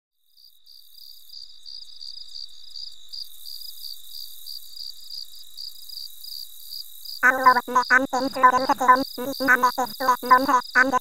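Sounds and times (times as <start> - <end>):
crickets chirping: 0.3 - 11.0.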